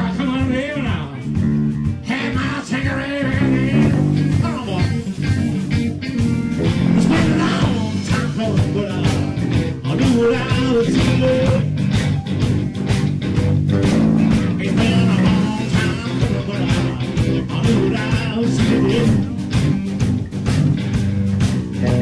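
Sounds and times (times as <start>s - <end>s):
drum kit beat: 0.0s - 22.0s
electric bass: 0.0s - 22.0s
electric guitar: 0.0s - 22.0s.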